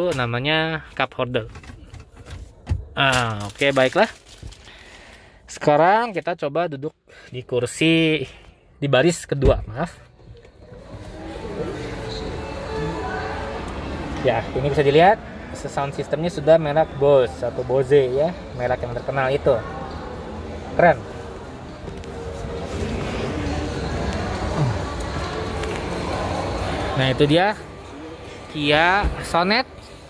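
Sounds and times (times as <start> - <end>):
faint background music: 5.5 - 30.0
indistinct voices: 19.5 - 29.8.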